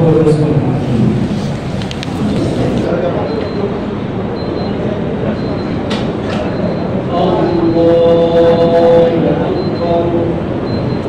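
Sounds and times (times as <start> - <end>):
murmur of congregation: 0.0 - 11.0
man chanting in long notes: 7.1 - 10.4.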